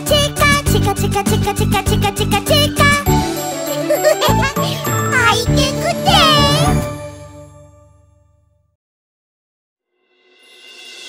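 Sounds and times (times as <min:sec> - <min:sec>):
bright children's music with chimes: 0:00.0 - 0:07.8
child calling out: 0:04.3 - 0:06.8.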